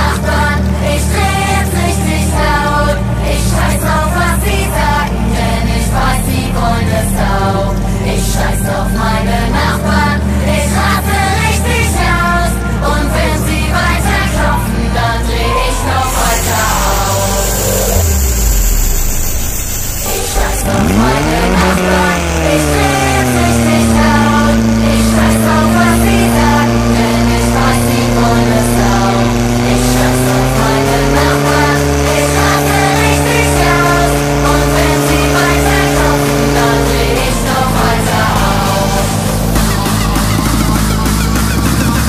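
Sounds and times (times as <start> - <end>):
pump engine revving: 0.0 - 42.0
song playing: 0.0 - 42.0.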